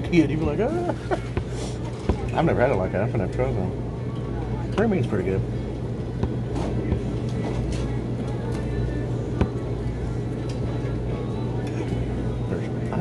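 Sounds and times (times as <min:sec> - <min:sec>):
diners chatter: 0:00.0 - 0:13.0
low steady hum: 0:00.0 - 0:13.0.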